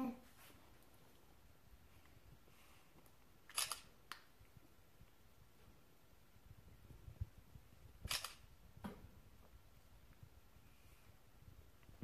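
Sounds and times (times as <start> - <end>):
camera shutter clicks: 3.5 - 3.9, 8.1 - 8.4.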